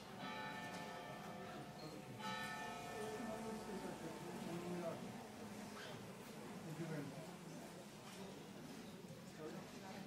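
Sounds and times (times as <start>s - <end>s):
church bell ringing: 0.0s - 5.0s.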